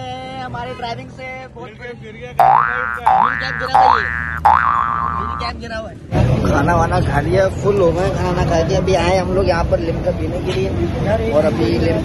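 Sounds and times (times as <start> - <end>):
cartoon boing sound effect: 2.4 - 5.5.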